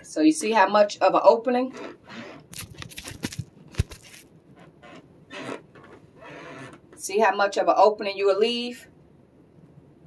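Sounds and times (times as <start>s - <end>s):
fabric rustling: 2.5s - 4.3s.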